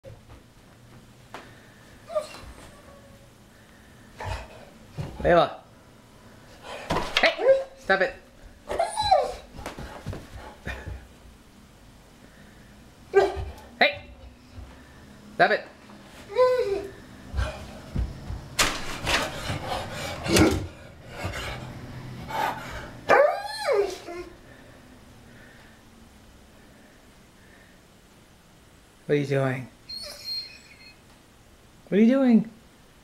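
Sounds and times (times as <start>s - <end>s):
dog whining bark: 7.2s - 7.8s, 8.7s - 9.5s, 13.1s - 13.6s, 23.1s - 24.3s, 29.9s - 31.0s
dog barking: 13.1s - 13.5s.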